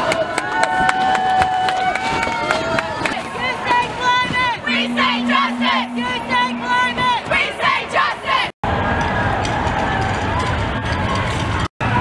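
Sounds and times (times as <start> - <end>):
crowd and street din: 0.0 - 12.0
crowd chanting: 3.4 - 8.5
low rumble: 4.6 - 7.4.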